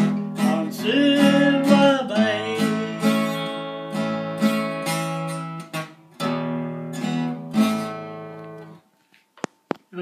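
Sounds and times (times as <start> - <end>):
acoustic guitar strummed chords: 0.0 - 8.8.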